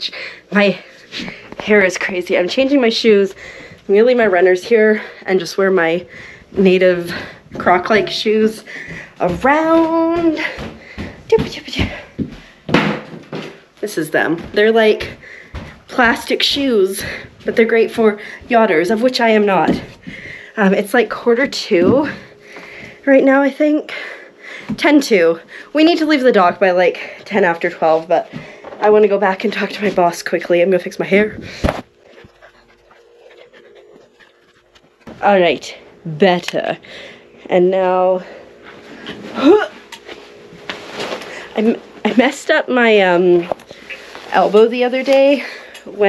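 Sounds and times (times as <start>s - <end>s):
faint steady hum: 0.0s - 46.0s
rustling of hair and clothing: 37.7s - 46.0s.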